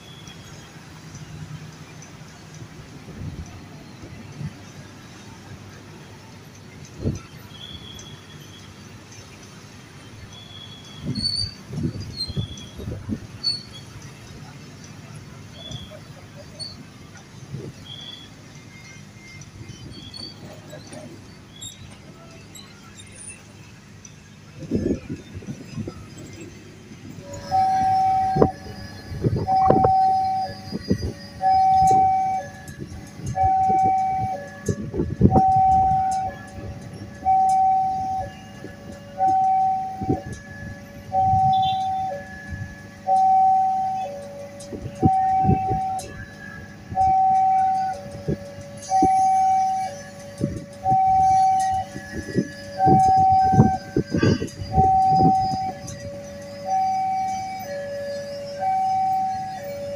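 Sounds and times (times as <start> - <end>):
level-crossing two-tone alarm: 10.0 - 24.0, 24.6 - 59.9.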